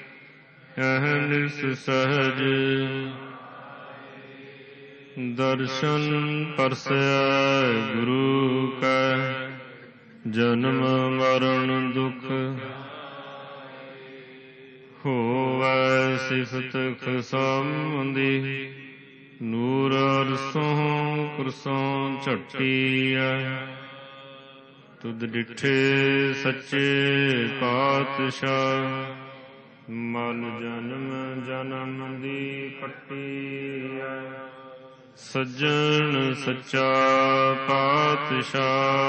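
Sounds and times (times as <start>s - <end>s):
voice chanting: 0.0s - 39.0s.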